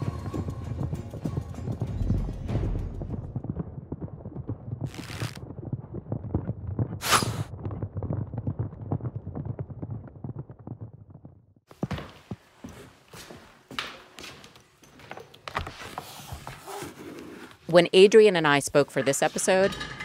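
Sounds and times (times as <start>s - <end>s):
horses galloping: 0.0s - 12.5s
short rushing noises: 7.0s - 7.5s.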